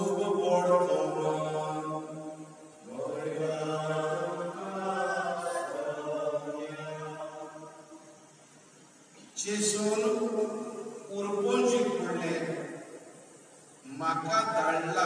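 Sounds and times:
man chanting a prayer: 0.0 - 2.0, 9.4 - 12.7, 13.9 - 15.0.

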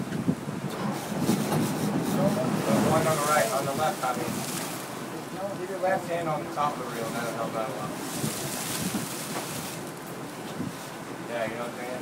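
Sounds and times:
wind on microphone: 0.0 - 5.1, 7.8 - 11.0
boat running at sea: 0.0 - 12.0.

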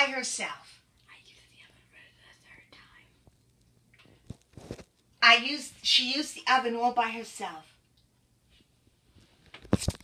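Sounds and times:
faint whispering: 0.7 - 3.3.

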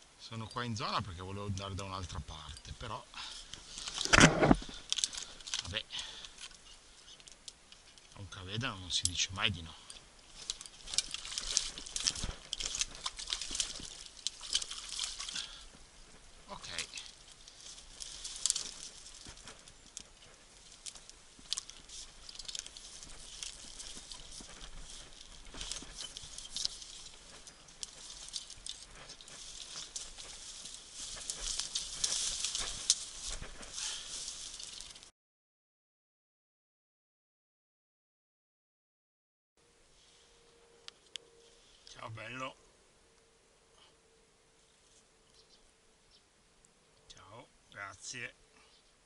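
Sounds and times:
crackling rustling through dry brush: 0.0 - 35.1, 39.7 - 49.0.

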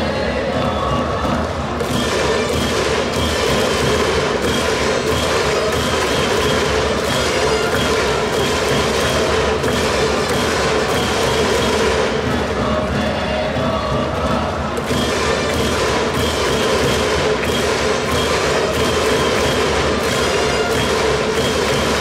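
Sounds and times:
crowd chanting with instruments: 0.0 - 22.0.

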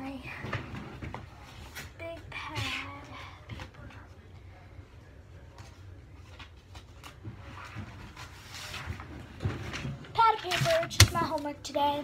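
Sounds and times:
papers rustling: 5.5 - 11.5.

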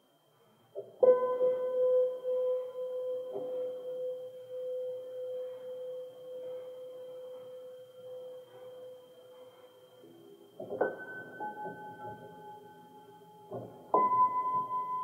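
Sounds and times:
piano note ringing: 10.1 - 15.0.

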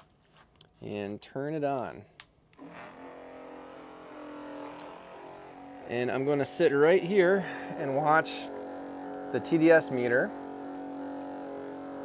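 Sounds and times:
electric pump humming: 2.6 - 12.0.

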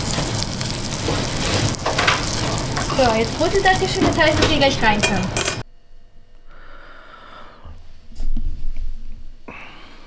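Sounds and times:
butter sizzling in a frying pan: 0.0 - 5.6.

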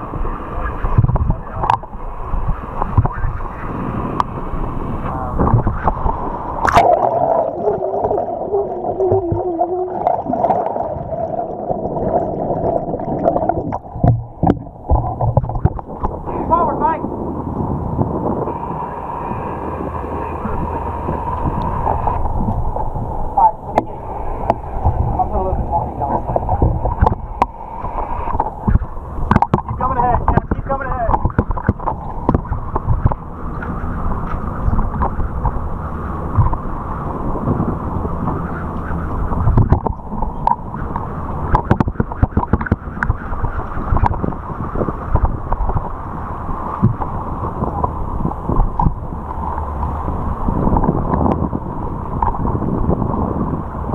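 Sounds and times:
boat engines humming: 0.0 - 53.9
rushing water: 0.0 - 53.9
wind buffeting microphone: 0.0 - 53.9.

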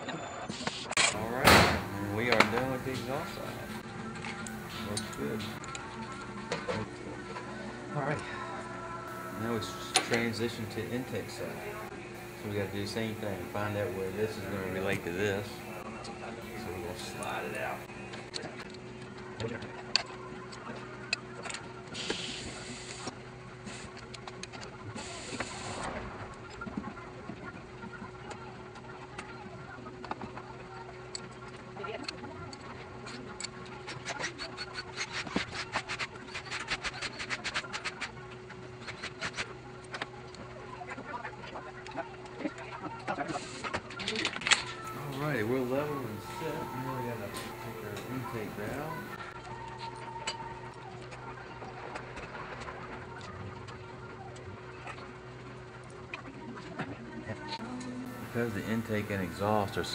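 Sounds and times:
machine hum: 1.1 - 3.8, 4.4 - 5.6, 9.1 - 15.8, 16.4 - 17.9, 44.9 - 49.2, 58.1 - 59.9.

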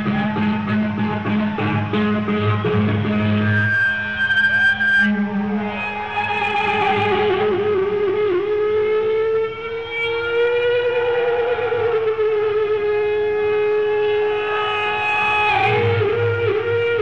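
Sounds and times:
rock band playing: 0.0 - 13.1
electric guitar sustained note: 0.0 - 17.0.

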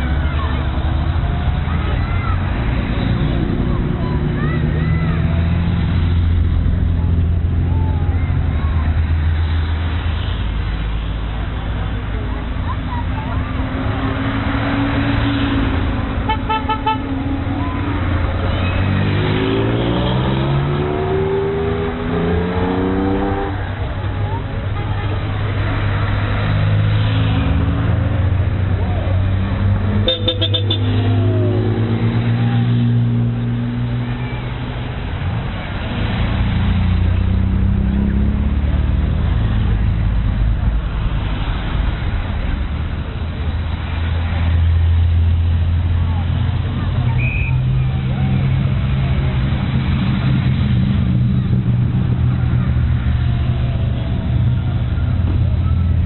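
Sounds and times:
cars driving past: 0.0 - 56.0
car engine revving: 13.2 - 24.4, 35.6 - 56.0
car horn toots: 16.3 - 17.0, 30.0 - 31.0.

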